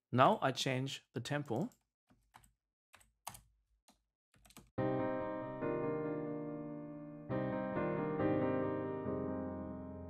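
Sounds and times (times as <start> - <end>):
computer keyboard keys tapping: 1.5 - 4.7
loud piano sequence: 4.8 - 10.0.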